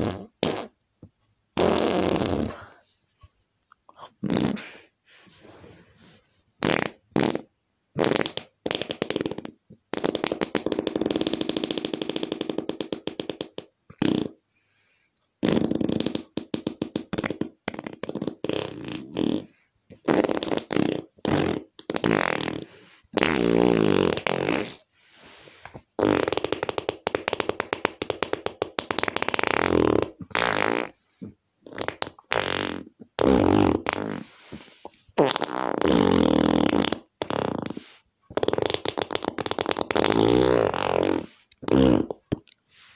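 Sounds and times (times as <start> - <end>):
farts: 0.0 - 0.7, 1.6 - 2.7, 4.2 - 4.7, 6.6 - 14.4, 15.4 - 24.9, 25.7 - 42.4.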